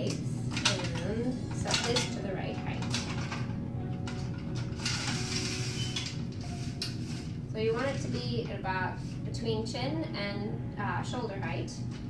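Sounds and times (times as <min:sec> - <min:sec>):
tripod legs sliding and rattling: 0:04.5 - 0:08.2.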